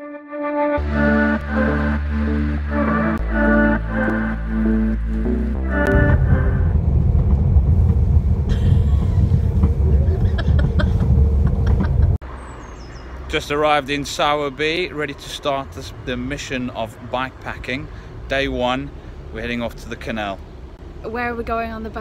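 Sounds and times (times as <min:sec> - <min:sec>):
background music: 0:00.0 - 0:12.2
train rumble inside carriage: 0:06.0 - 0:12.2.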